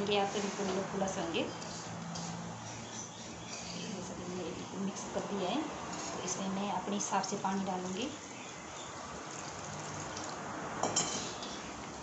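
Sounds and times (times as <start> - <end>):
water pouring into a bowl: 9.1 - 11.6.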